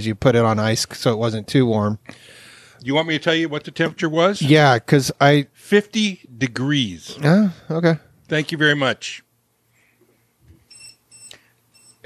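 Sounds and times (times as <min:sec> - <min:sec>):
thermometer high-pitched beeps: 0:10.7 - 0:12.0.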